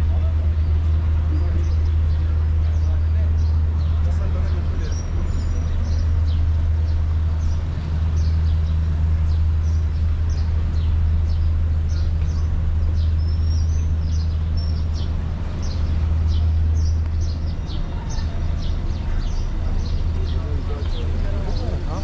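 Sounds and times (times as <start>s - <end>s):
low street rumble: 0.0s - 22.0s
small birds chirping: 0.0s - 22.0s.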